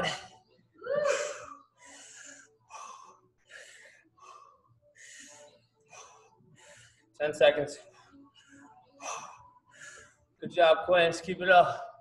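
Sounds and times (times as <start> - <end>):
man breathing hard: 1.3 - 7.2, 7.9 - 10.4.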